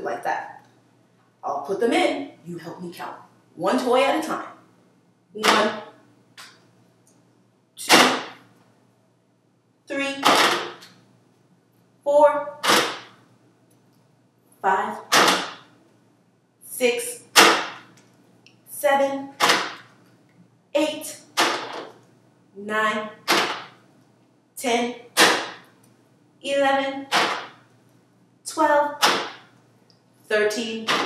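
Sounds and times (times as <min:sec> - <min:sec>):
woman counting aloud: 0:00.0 - 0:00.6, 0:01.4 - 0:04.6, 0:05.4 - 0:06.0, 0:07.8 - 0:08.3, 0:09.9 - 0:10.6, 0:12.0 - 0:12.9, 0:14.6 - 0:15.4, 0:16.6 - 0:17.4, 0:18.7 - 0:19.6, 0:20.8 - 0:21.3, 0:22.6 - 0:23.5, 0:24.6 - 0:25.4, 0:26.4 - 0:27.3, 0:28.5 - 0:29.2, 0:30.3 - 0:31.0.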